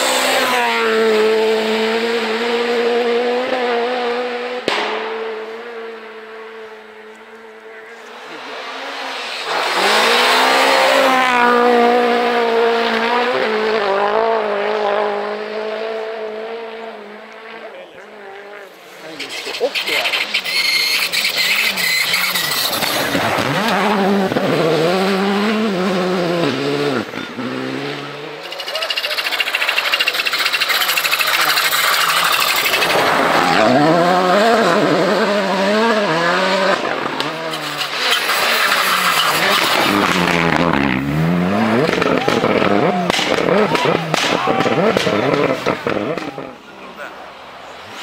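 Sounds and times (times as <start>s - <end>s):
engine revving hard: 0.0s - 6.9s, 8.3s - 17.3s, 19.6s - 46.6s
rally cars passing at speed: 0.0s - 48.0s
exhaust popping: 19.0s - 46.8s.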